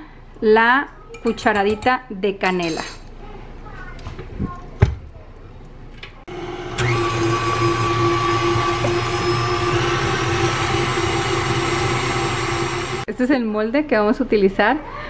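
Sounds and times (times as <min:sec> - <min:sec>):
stand mixer motor whisking: 0:06.3 - 0:13.1.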